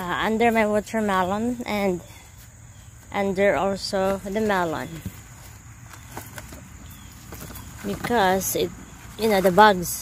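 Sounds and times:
crickets chirring: 0:00.0 - 0:10.0
cardboard rustling and tapping: 0:04.0 - 0:10.0.

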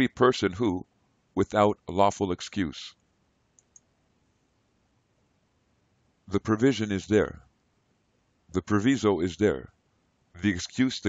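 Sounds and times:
faint computer mouse clicks: 0:03.5 - 0:03.9.

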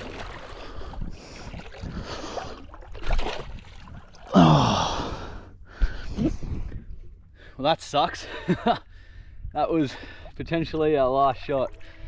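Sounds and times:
spear splashing into water: 0:00.0 - 0:00.7, 0:02.6 - 0:04.3
water sloshing around legs: 0:00.0 - 0:04.4
man grunting: 0:04.3 - 0:05.1.

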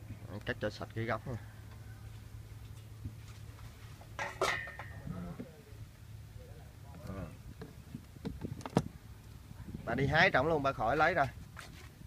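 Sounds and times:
metal bowl ringing: 0:04.2 - 0:05.0
sharp knocks in metal bowl: 0:04.2 - 0:05.0.

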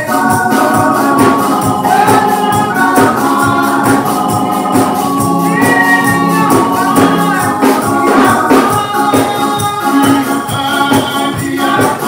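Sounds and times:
congregation singing a hymn: 0:00.0 - 0:12.0
electric keyboard: 0:00.0 - 0:12.0
tambourine shaken: 0:00.0 - 0:12.0.

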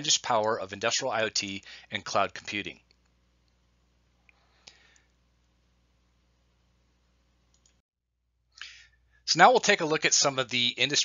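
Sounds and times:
computer mouse clicks: 0:07.5 - 0:07.8.

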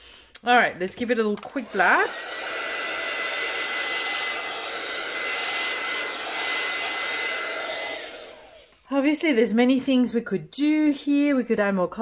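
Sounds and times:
heat tool blowing with whine: 0:01.4 - 0:08.8.

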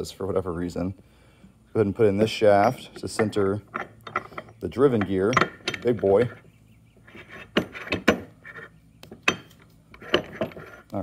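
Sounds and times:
metal gears clinking: 0:02.6 - 0:06.4, 0:09.2 - 0:10.9.

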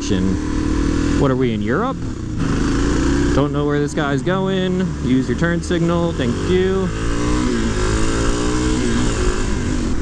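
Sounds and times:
motorcycle engine accelerating: 0:00.0 - 0:10.0.

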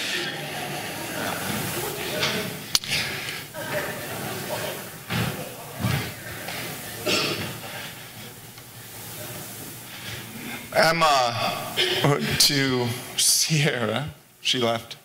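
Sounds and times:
murmur of voices in echoing hall: 0:00.0 - 0:15.0
steady hiss: 0:00.0 - 0:15.0.

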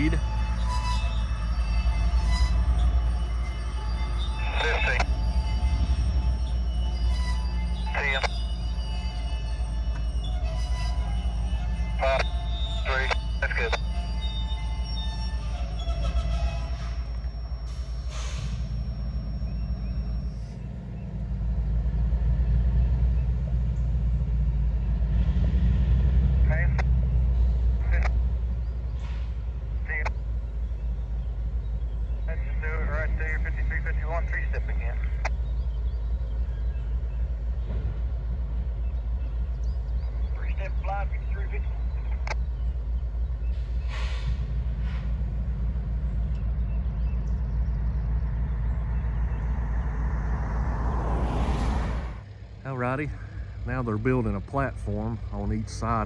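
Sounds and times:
train wheels squealing: 0:00.0 - 0:12.9, 0:13.8 - 0:21.5
distant calls: 0:00.0 - 0:25.1, 0:26.6 - 0:56.0
freight train rumbling: 0:00.0 - 0:56.0.

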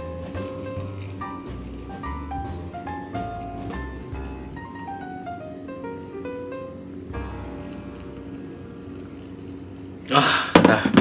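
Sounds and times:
hot water pouring into cup: 0:00.0 - 0:11.0.

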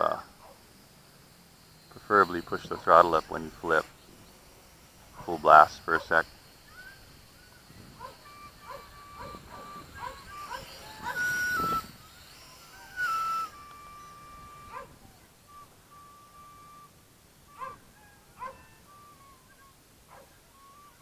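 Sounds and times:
distant drone motors whining: 0:00.0 - 0:21.0
bird chirps: 0:01.6 - 0:21.0.

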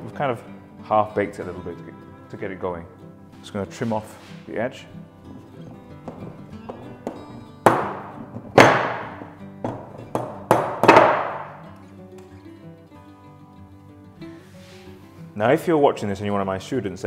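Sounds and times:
background guitar music: 0:00.0 - 0:17.0
rolling pin knocking on metal tin: 0:05.3 - 0:11.6.

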